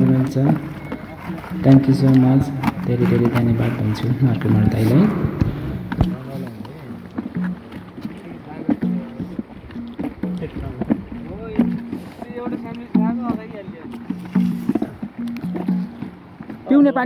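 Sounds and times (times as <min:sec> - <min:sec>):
hand drum strokes: 0:00.0 - 0:16.9.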